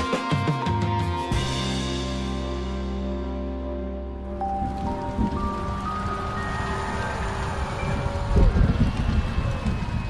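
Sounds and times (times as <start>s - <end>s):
dense crackling rumble: 4.2s - 10.0s.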